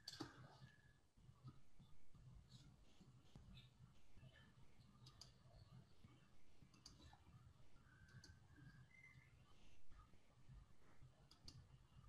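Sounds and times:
faint clicks: 5.0s - 5.4s, 6.7s - 7.2s, 8.0s - 8.4s, 11.2s - 11.7s.

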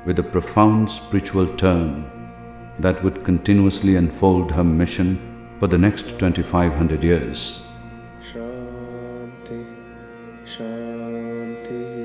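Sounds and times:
background music: 0.0s - 12.0s
mantra chanted in long notes: 0.0s - 12.0s.

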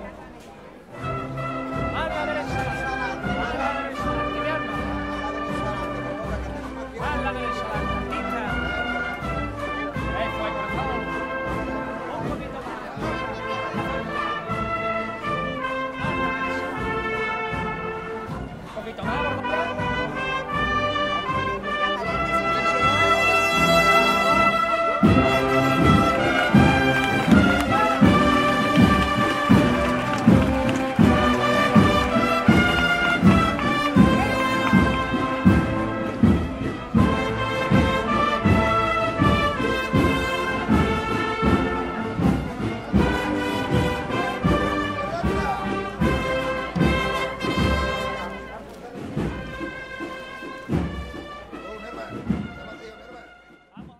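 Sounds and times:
brass band playing slow march: 0.0s - 53.9s
slow drum beat: 25.0s - 52.7s.

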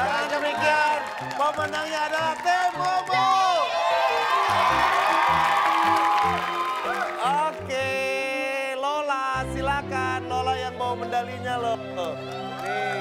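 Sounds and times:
crowd cheering and whooping: 0.0s - 7.6s, 12.2s - 13.0s.

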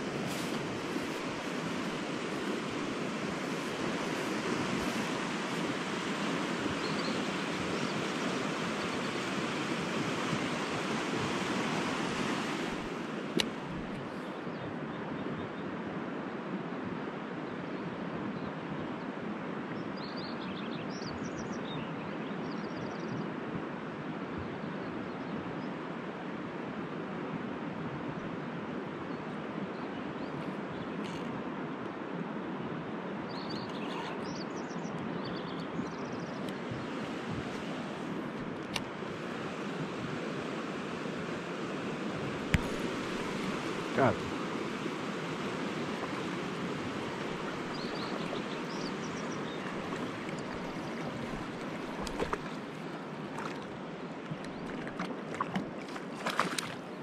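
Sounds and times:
river water rushing: 0.0s - 14.2s, 35.6s - 57.0s
click: 38.6s - 38.9s.

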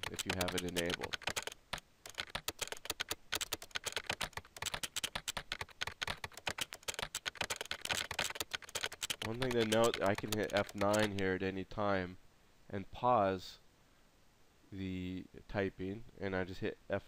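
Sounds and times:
keyboard key clicks: 0.0s - 11.2s.

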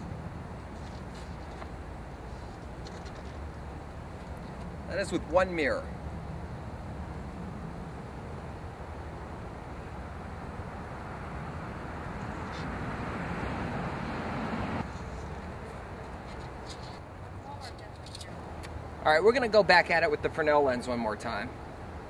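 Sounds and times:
outdoor rushing noise: 0.0s - 17.6s.

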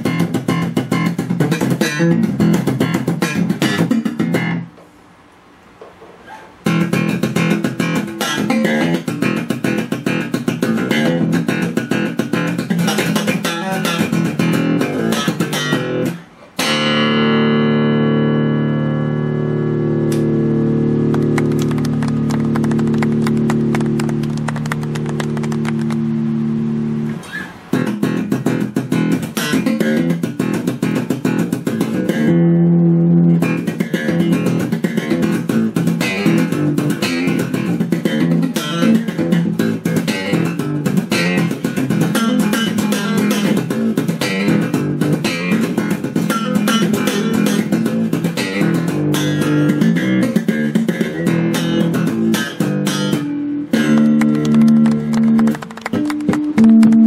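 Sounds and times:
electric bass guitar playing: 0.0s - 4.8s, 6.6s - 57.0s.

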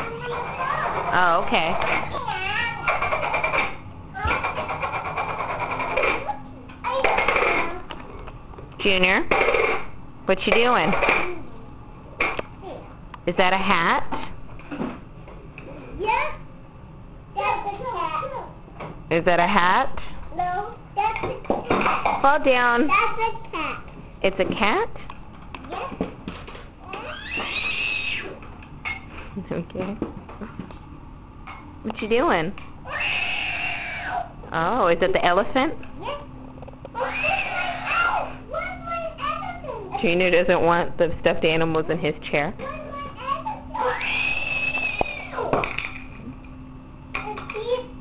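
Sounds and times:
toddler squealing: 26.9s - 28.4s, 32.9s - 34.3s, 37.0s - 38.4s, 43.8s - 45.5s.

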